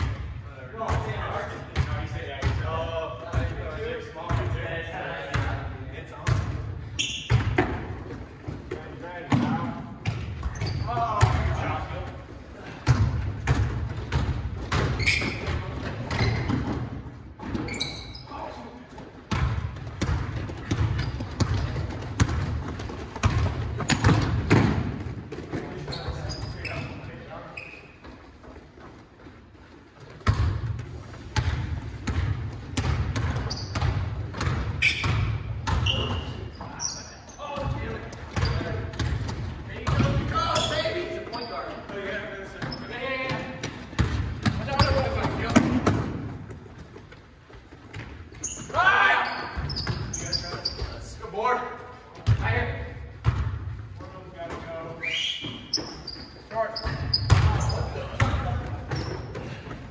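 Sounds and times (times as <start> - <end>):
basketballs bouncing on hardwood floor: 4.3 - 4.6, 6.2 - 11.8, 12.6 - 18.1, 18.9 - 26.9, 30.0 - 36.7, 37.5 - 41.0, 42.6 - 48.8, 52.2 - 54.7, 56.8 - 59.9.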